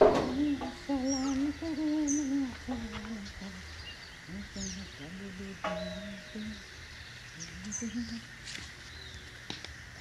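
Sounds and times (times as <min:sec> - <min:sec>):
birds chirping: 0:00.0 - 0:10.0.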